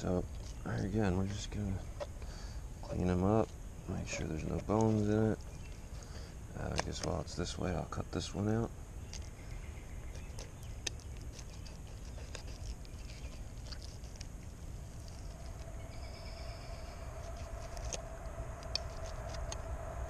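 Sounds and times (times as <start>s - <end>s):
steady hum: 0.0s - 20.0s.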